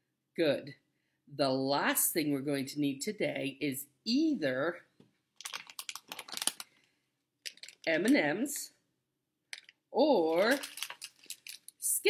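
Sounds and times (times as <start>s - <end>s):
plastic candy bag crinkling: 5.4s - 8.6s, 9.5s - 12.0s.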